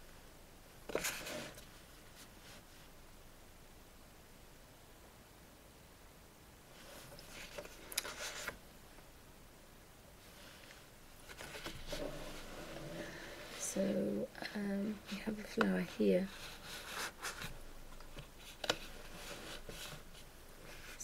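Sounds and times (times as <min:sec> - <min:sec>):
faint scratching: 0:00.9 - 0:03.0, 0:06.7 - 0:08.6, 0:10.2 - 0:21.0
woman speaking quietly: 0:13.6 - 0:16.4.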